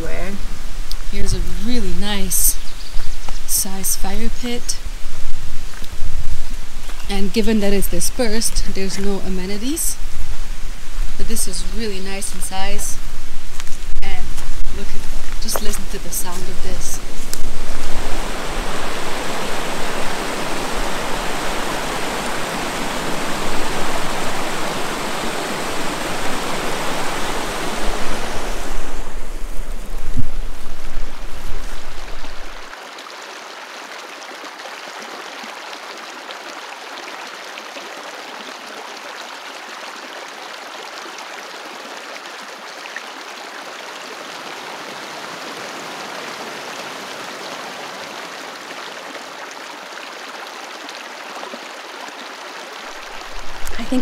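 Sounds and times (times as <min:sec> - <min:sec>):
creek water rushing: 0:00.0 - 0:54.0.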